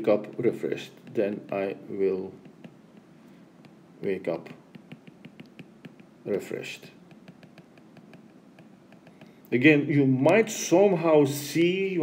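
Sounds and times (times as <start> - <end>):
low room hiss: 0.0 - 12.0
stylus tapping on glass screen: 1.0 - 3.8, 4.5 - 6.4, 7.0 - 9.5.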